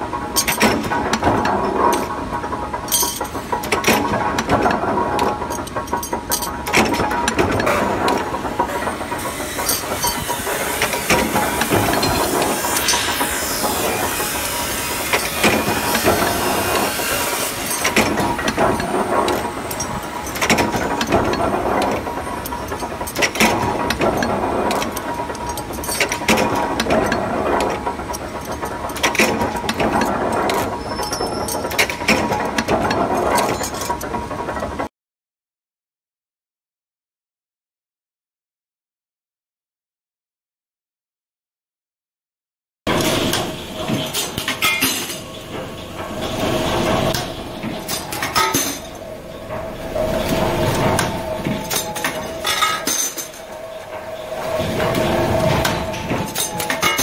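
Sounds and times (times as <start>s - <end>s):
punch press metal clank: 0.4s - 2.1s, 2.9s - 8.8s, 9.6s - 14.3s, 15.0s - 34.1s, 42.9s - 45.6s, 46.3s - 53.5s, 54.8s - 57.0s
press running noise: 42.9s - 57.0s.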